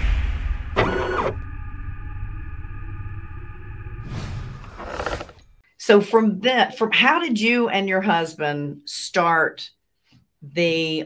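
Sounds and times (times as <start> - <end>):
steady low rumble: 0.0 - 5.6
humming drone tones: 0.5 - 4.1
servo-like whirr: 0.8 - 1.4, 4.1 - 5.4.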